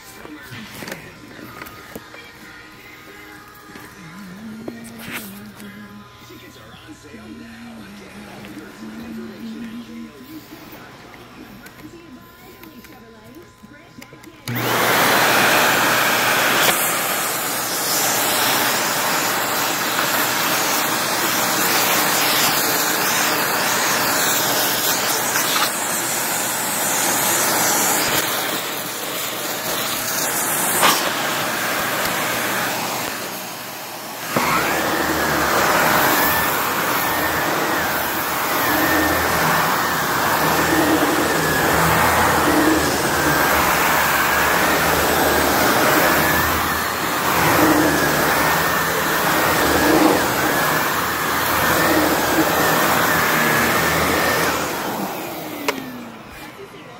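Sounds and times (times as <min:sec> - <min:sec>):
vacuum cleaner motor hum and whine: 0:00.0 - 0:56.9
vacuum cleaner hose hissing: 0:14.5 - 0:56.6.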